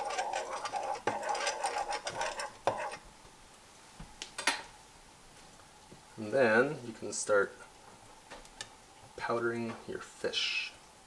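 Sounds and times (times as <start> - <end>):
fork scraping ceramic plate: 0.0 - 3.0.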